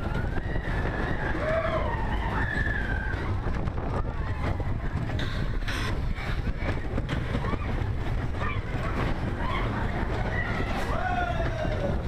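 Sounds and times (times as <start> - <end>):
roller coaster rumble and rattle: 0.0 - 12.0
wind buffeting microphone: 0.0 - 12.0
riders' voices: 4.4 - 12.0.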